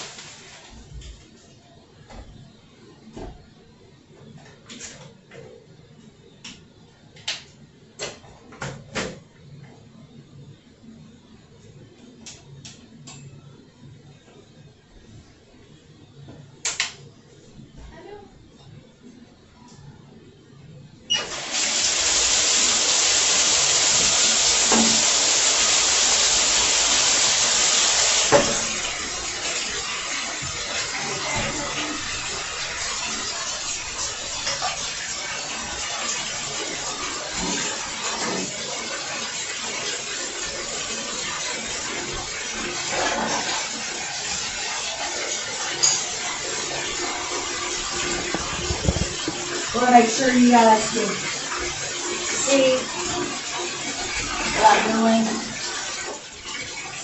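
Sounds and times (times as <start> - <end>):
water running into bathtub: 0.0 - 0.9, 21.1 - 57.0.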